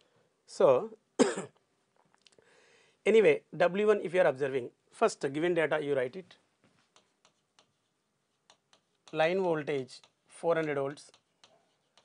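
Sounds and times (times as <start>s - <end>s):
man coughing: 1.2s - 1.6s.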